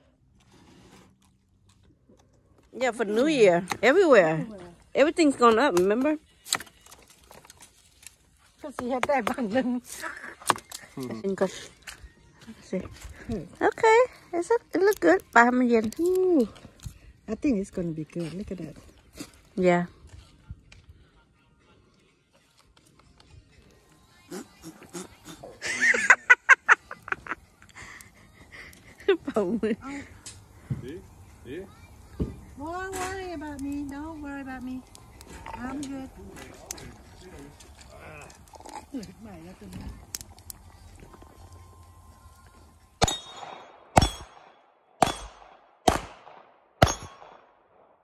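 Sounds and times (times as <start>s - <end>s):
person laughing: 25.4s - 29.9s
handgun shots with echo: 43.0s - 47.6s.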